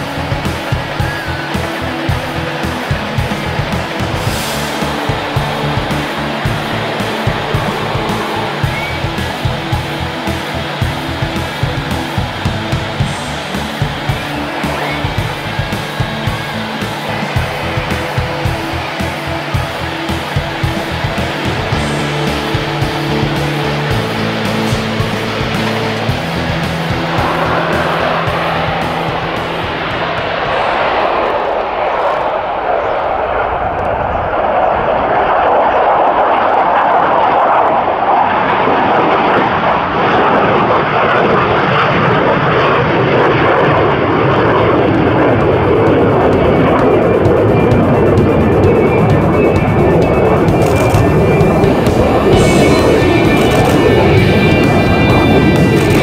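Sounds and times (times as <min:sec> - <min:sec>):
background music with steady beat: 0:00.0 - 0:31.4, 0:42.8 - 0:56.0
jet engine roar: 0:00.0 - 0:56.0.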